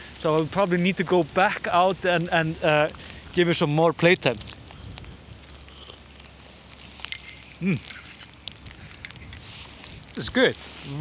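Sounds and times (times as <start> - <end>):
person sipping from a mug: 5.6 - 10.0.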